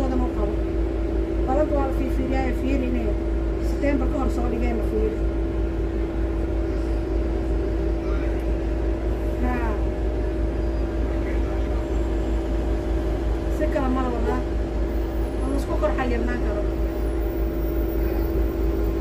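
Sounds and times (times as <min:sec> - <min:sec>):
bus engine rumble: 0:00.0 - 0:19.0
passengers talking: 0:00.0 - 0:19.0.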